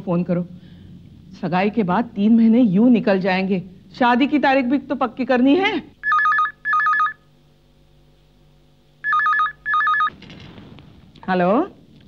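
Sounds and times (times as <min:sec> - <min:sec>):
telephone warbling double ring: 0:09.0 - 0:10.1.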